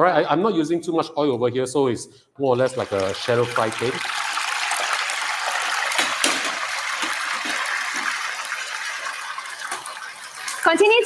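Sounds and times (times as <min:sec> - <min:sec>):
oil sizzling in a pan: 0:02.8 - 0:11.0
sharp crackles of frying oil: 0:03.2 - 0:11.0.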